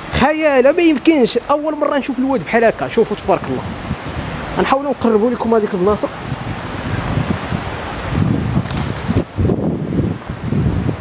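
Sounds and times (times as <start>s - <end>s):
river rushing: 0.0s - 11.0s
wind buffeting microphone: 0.0s - 11.0s.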